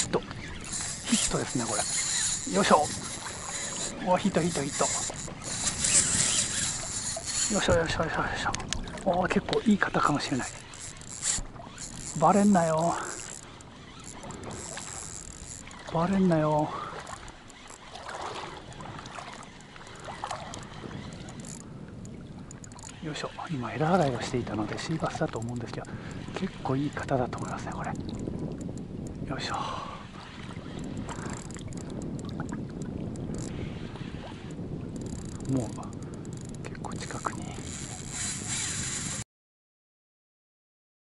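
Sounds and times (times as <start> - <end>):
fishing reel whining: 0.0 - 39.2
wind and water noise: 0.0 - 39.2.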